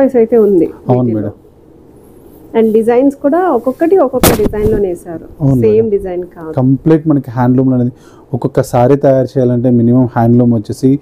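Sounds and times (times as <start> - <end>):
silk cloth snapping: 4.2 - 4.8.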